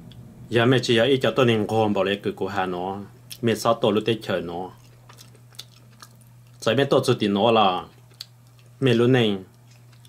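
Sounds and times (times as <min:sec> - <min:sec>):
steady low hum: 0:00.0 - 0:10.0
person speaking: 0:00.5 - 0:04.9, 0:08.8 - 0:09.5
person chewing pizza: 0:04.3 - 0:06.8, 0:07.8 - 0:10.0
faint mouth clicks: 0:08.1 - 0:08.6.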